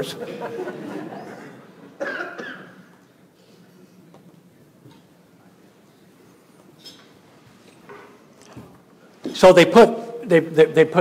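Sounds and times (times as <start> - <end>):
person coughing: 1.3 - 2.8.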